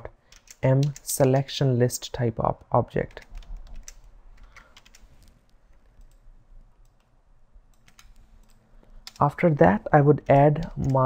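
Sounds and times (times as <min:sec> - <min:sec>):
computer keyboard keystrokes: 0:00.3 - 0:01.4, 0:03.1 - 0:05.3, 0:07.7 - 0:09.2, 0:10.2 - 0:11.0.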